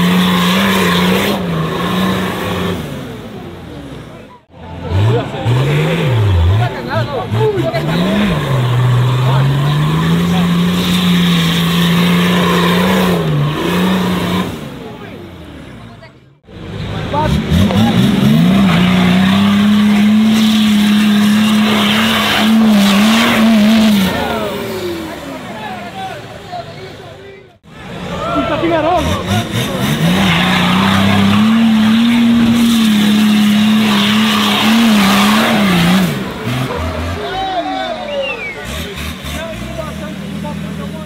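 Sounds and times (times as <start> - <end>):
diesel engine revving hard: 0.0 - 15.8, 16.4 - 26.5, 27.6 - 41.0.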